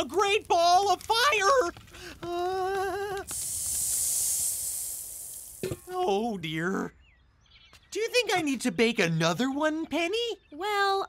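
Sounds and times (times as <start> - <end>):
fire extinguisher spraying hiss: 2.9 - 5.9.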